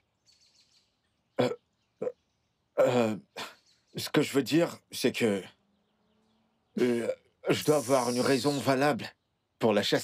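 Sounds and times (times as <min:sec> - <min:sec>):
man hesitating: 0:06.8 - 0:07.3
faint hiss: 0:06.8 - 0:09.1.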